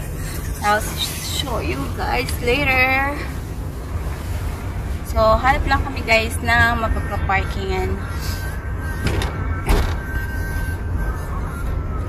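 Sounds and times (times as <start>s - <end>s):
car engine rumble: 0.0s - 12.0s
road noise inside car: 0.0s - 12.0s
thump: 9.1s - 10.0s.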